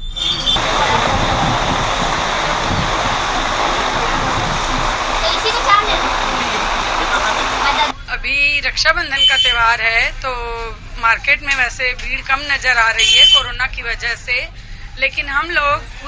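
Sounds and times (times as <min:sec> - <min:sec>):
traffic noise: 0:00.0 - 0:16.0
indistinct voices: 0:00.3 - 0:16.0
woman speaking close up: 0:07.8 - 0:16.0.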